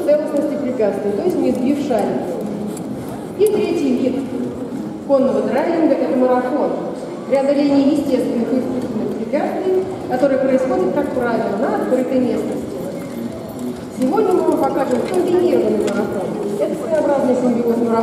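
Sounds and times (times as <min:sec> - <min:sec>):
voices talking in a hall: 0:00.0 - 0:18.0.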